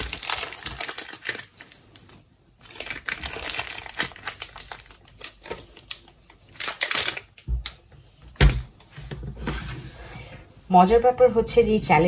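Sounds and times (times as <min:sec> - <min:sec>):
plastic wrapper crinkling: 0:00.0 - 0:07.8.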